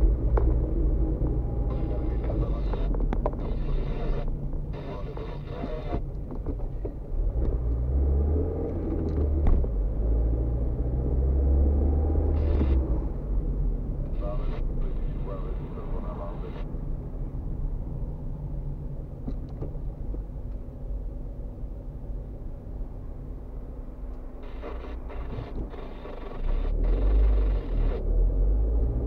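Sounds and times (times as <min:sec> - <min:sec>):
car engine and tyre rumble: 0:00.0 - 0:29.0.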